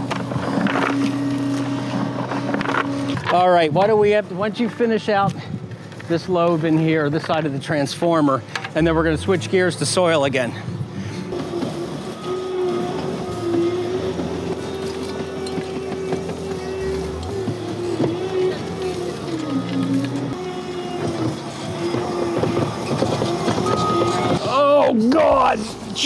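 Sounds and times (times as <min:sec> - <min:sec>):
loader engine at high revs: 0:00.0 - 0:03.3, 0:11.2 - 0:24.4.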